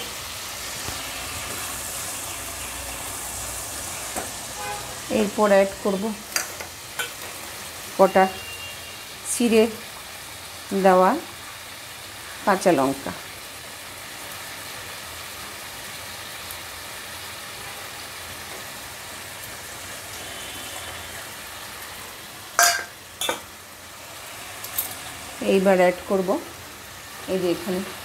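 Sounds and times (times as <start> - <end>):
food sizzling in a pan: 0.0 - 28.0.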